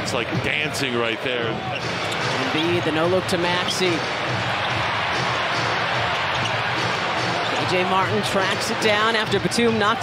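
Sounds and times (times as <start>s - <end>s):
arena crowd noise: 0.0s - 10.0s
basketball court sounds: 1.6s - 9.9s.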